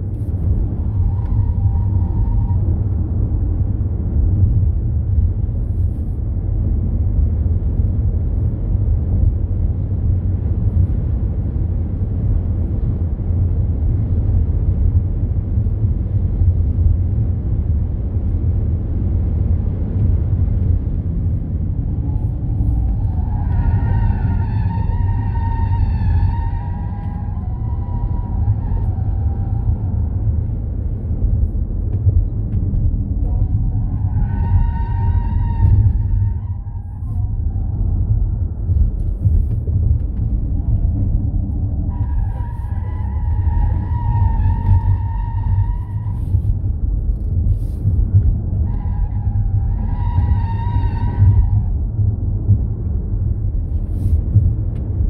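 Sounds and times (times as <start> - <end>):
wind and road noise: 0.0 - 55.0.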